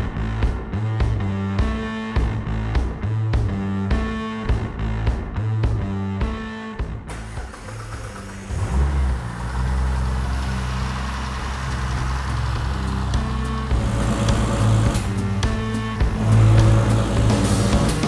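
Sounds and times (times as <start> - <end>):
background music: 0.0 - 18.0
car engine starting and idling: 7.0 - 18.0.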